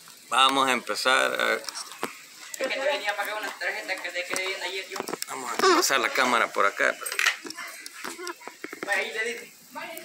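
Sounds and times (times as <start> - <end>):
man speaking: 4.5 - 7.0.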